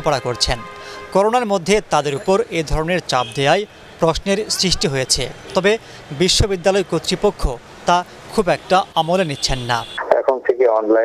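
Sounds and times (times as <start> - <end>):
person talking: 0.0 - 8.0, 8.7 - 11.0
man speaking over telephone: 0.0 - 11.0.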